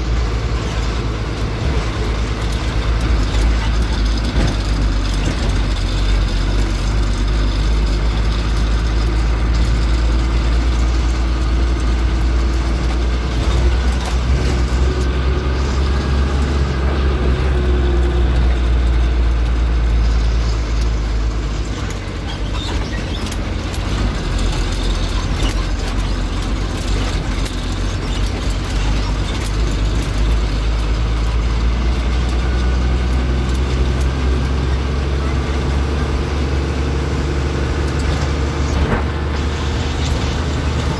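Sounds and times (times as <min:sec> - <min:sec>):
bus engine rumble: 0:00.0 - 0:40.9
vehicle rattles and clicks: 0:00.0 - 0:40.9.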